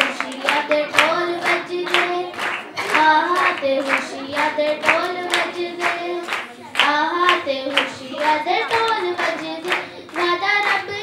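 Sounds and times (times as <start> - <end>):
children clapping in rhythm: 0.0 - 11.0
girl singing into a microphone: 0.0 - 11.0.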